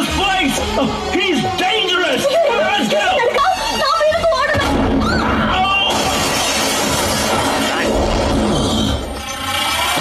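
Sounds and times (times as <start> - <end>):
film music: 0.0 - 10.0
debris crashing: 5.7 - 9.2
glass shattering: 5.9 - 8.3.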